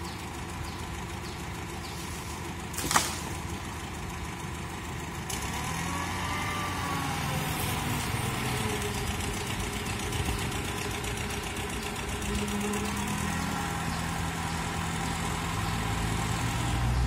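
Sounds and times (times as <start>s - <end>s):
truck engine idling: 0.0s - 17.0s.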